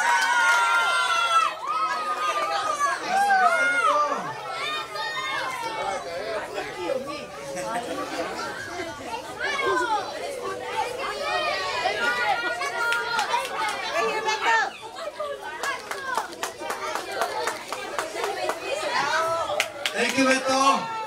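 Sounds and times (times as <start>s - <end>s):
crowd chatter with children's voices: 0.0s - 21.0s.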